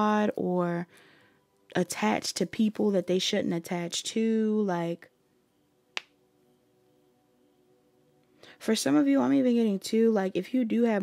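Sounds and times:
faint steady tones: 0.3 - 11.0.

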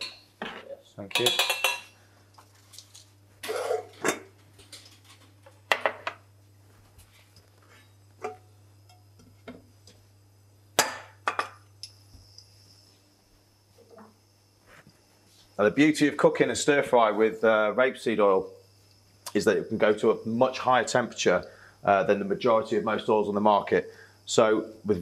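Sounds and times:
metal pans knocking and clinking: 0.0 - 1.9.

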